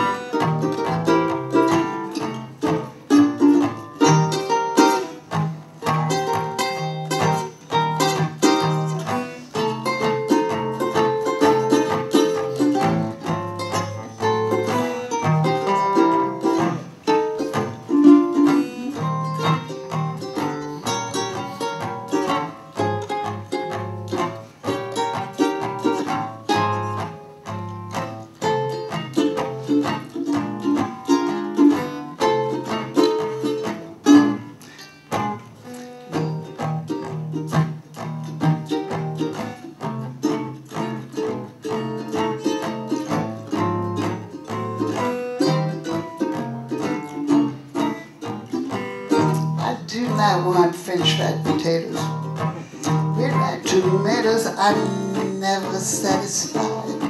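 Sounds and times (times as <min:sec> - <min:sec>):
acoustic guitar chords: 0:00.0 - 0:57.0
ukulele lead line: 0:00.0 - 0:57.0.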